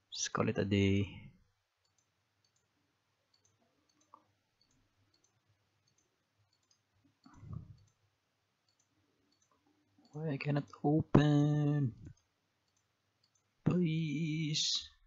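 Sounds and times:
computer mouse clicks: 0:01.8 - 0:02.7, 0:03.3 - 0:08.0, 0:08.6 - 0:10.2, 0:12.0 - 0:13.5
low hum of a voice: 0:10.2 - 0:12.1, 0:13.7 - 0:15.0.

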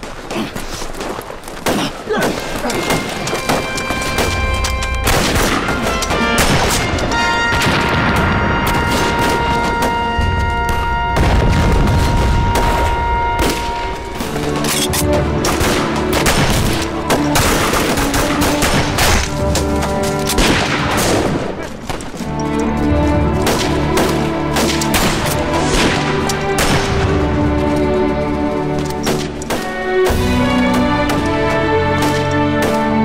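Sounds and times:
rapid gunfire: 0:01.7 - 0:09.7, 0:15.5 - 0:19.4, 0:20.4 - 0:21.7
dramatic background music: 0:01.7 - 0:33.0
booming explosions: 0:05.0 - 0:14.0.

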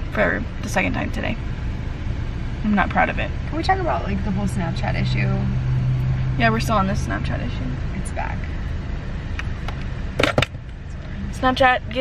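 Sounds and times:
car engine rumbling: 0:00.0 - 0:12.0.

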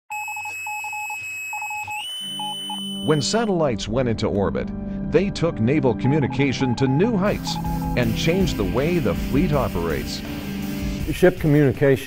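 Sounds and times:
electronic beeping pulses: 0:00.1 - 0:03.5, 0:06.0 - 0:10.2.

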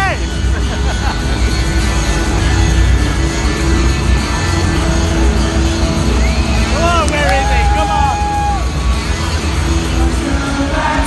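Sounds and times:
crowd voices: 0:00.0 - 0:11.0
heavy bass from speakers: 0:00.0 - 0:11.0
live concert music: 0:00.0 - 0:11.0.

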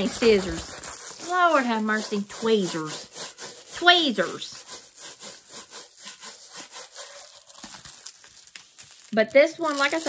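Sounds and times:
plastic wrapping rubbing: 0:00.0 - 0:10.0.

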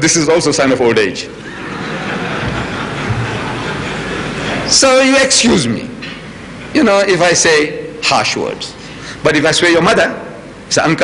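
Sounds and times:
audience laughing and clapping: 0:01.4 - 0:04.8.

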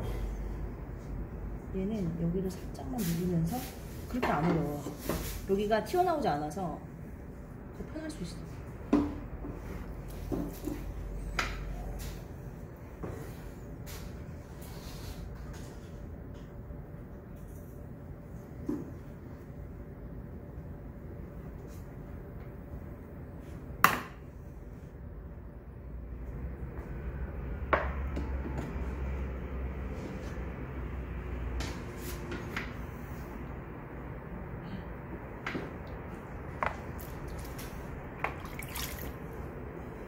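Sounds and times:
wet clay being shaped: 0:36.6 - 0:39.8.

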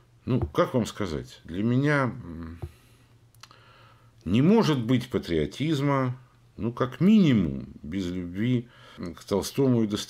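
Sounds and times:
man's voice: 0:00.3 - 0:02.7.

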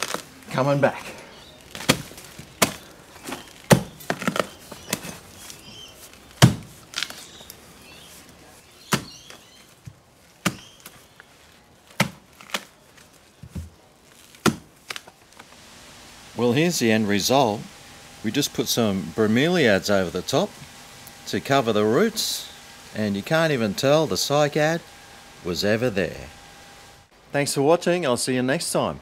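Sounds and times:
mattock chopping into soil: 0:01.8 - 0:05.2, 0:06.4 - 0:07.3, 0:08.8 - 0:09.4, 0:10.4 - 0:11.0, 0:11.9 - 0:12.7, 0:14.4 - 0:15.0.

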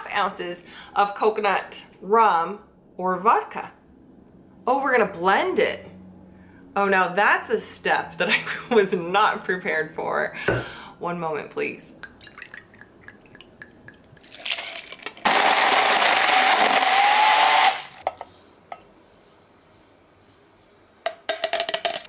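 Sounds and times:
blender running: 0:14.4 - 0:18.0.

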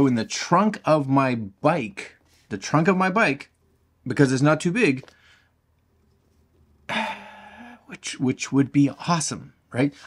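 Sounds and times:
man's breathy vocal noise: 0:06.9 - 0:07.9.

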